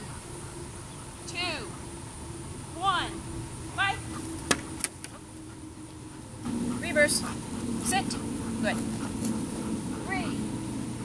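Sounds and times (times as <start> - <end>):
low motor hum: 0.0 - 11.0.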